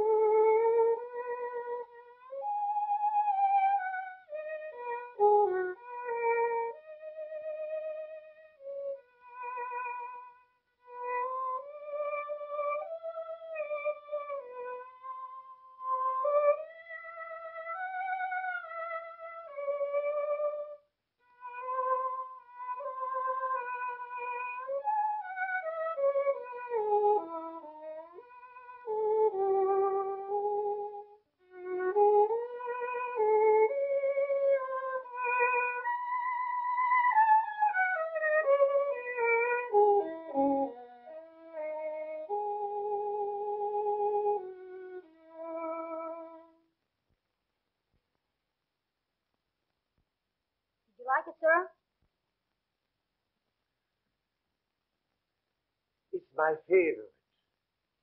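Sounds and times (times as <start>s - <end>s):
solo violin slow melody: 0.0s - 46.7s.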